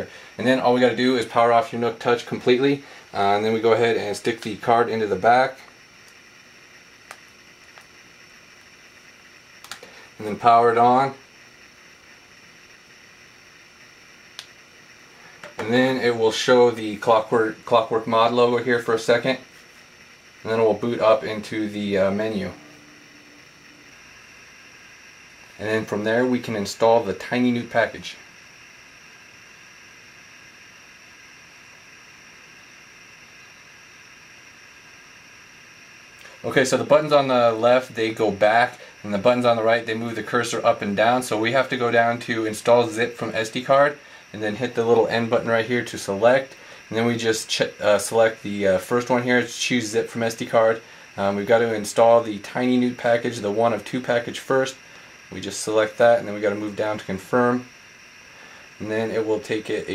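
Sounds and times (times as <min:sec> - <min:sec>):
faint room hiss: 0:00.0 - 0:59.9.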